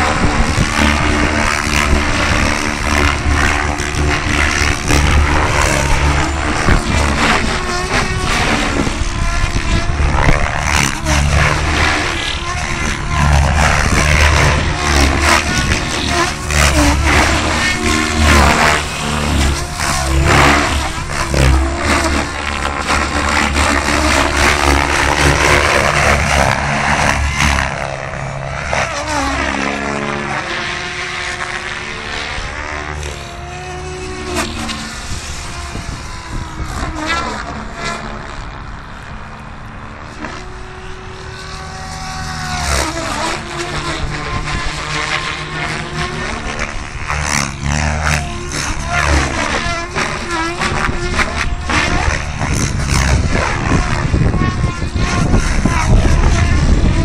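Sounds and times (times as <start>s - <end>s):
helicopter rotor blade noise: 0.0s - 57.0s
helicopter whine: 0.0s - 57.0s.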